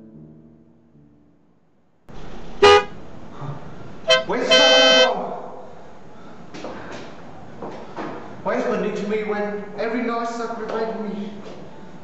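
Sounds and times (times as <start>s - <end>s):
car horn honking: 2.6s - 3.0s, 4.0s - 5.1s.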